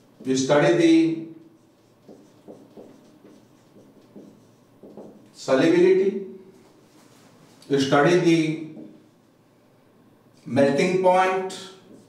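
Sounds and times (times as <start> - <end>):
marker pen on whiteboard: 0.0 - 9.4, 10.4 - 12.0.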